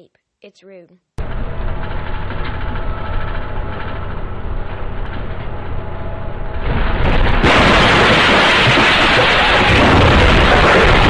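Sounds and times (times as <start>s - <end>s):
bus engine rumbling: 1.2s - 11.0s.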